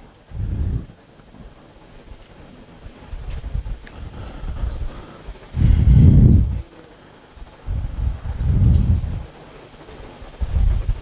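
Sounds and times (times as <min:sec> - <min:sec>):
air buffeting microphone: 0:00.0 - 0:11.0.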